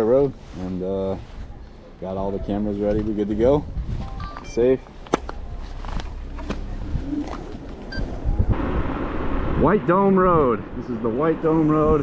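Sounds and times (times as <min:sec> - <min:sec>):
wind rumbling on microphone: 0:02.3 - 0:04.3, 0:05.3 - 0:12.0
steady rushing noise: 0:05.8 - 0:12.0.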